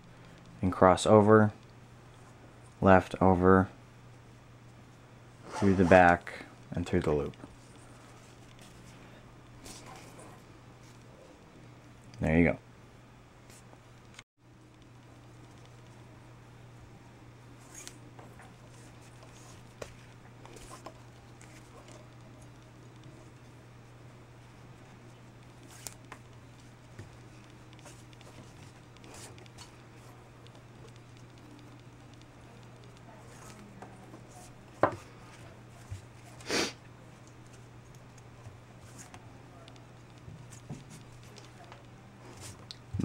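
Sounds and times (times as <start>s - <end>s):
low electrical hum: 0.0s - 43.0s
cord ticks and rustles: 24.4s - 36.2s.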